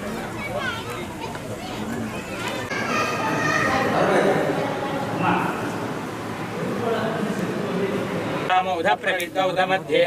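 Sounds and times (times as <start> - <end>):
people chattering and calling out: 0.0 - 10.0.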